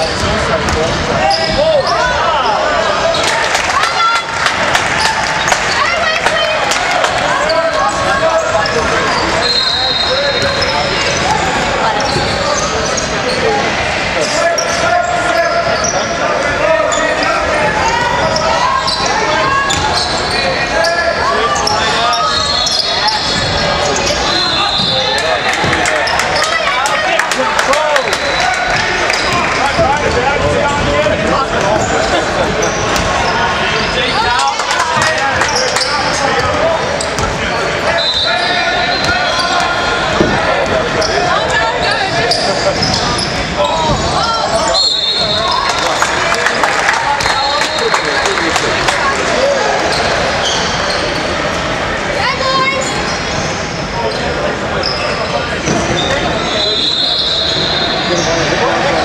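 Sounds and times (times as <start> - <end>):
sneaker squeaks: 0.0 - 3.4, 7.3 - 16.2, 16.8 - 27.0, 28.2 - 30.8, 31.6 - 46.0, 49.8 - 51.5, 52.2 - 58.6
players and spectators voices: 0.0 - 59.0.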